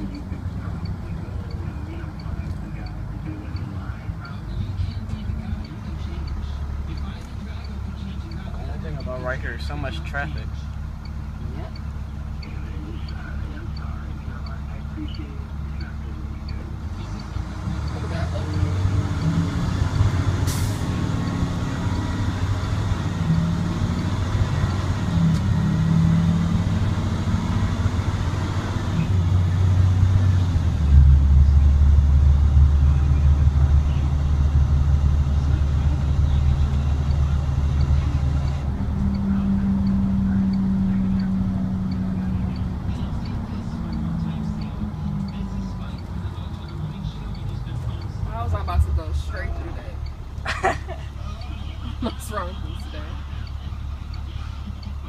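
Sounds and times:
diesel bus engine accelerating: 0.0s - 55.0s.

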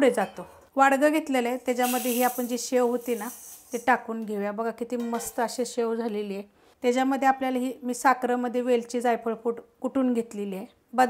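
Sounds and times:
woman talking: 0.0s - 11.0s
brief hiss: 1.8s - 3.9s.

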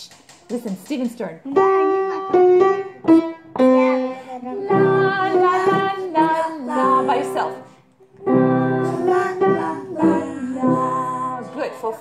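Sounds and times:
person singing: 3.6s - 11.8s.

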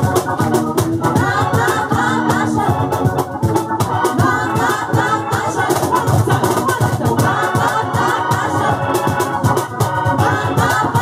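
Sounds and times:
band playing soul-reggae: 0.0s - 11.0s
women singing together: 1.0s - 11.0s.

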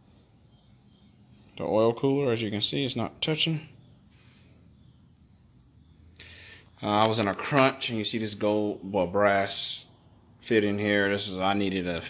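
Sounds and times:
man speaking: 1.6s - 3.8s, 6.8s - 12.0s
soft breath hiss: 3.2s - 8.5s.

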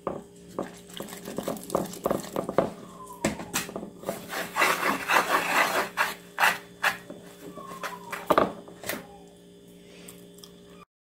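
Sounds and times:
spatula scraping a mixing bowl: 4.0s - 7.1s.

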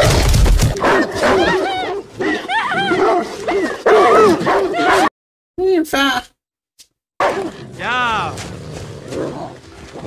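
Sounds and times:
hounds barking and yelping: 0.8s - 5.1s.

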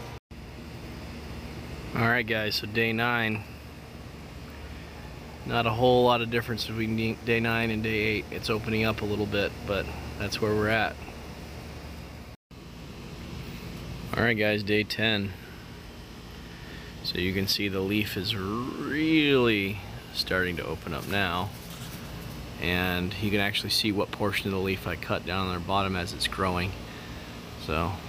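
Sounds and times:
low background hum and hiss: 0.0s - 28.0s.

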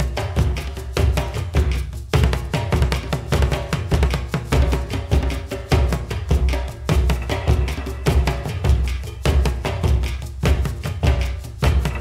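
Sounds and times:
hand drum beating: 0.0s - 12.0s.

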